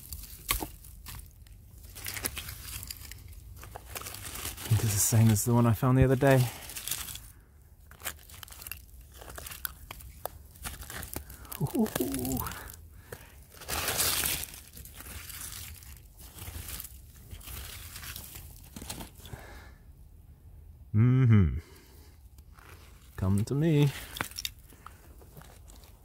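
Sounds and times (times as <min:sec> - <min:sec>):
hand scraping soil and roots: 0:00.0 - 0:19.4, 0:22.0 - 0:26.0.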